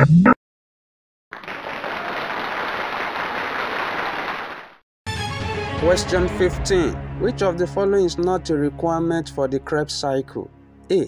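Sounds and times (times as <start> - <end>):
applause: 1.3 - 4.8.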